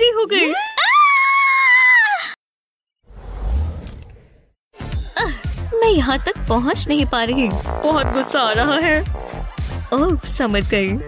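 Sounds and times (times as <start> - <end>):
woman screaming: 0.6 - 2.4.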